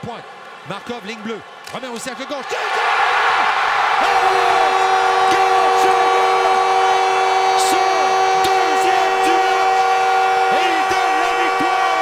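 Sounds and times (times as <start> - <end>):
crowd cheering: 0.0 - 12.0
goal horn chord: 4.0 - 12.0.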